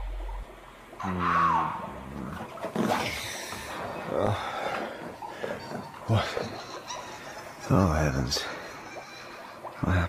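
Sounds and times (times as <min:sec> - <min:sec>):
deep rumble: 0:00.0 - 0:01.0.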